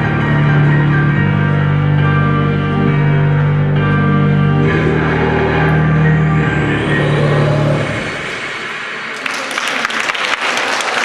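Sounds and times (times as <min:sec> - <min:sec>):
dance music: 0:00.0 - 0:09.2
audience applauding: 0:09.0 - 0:11.0.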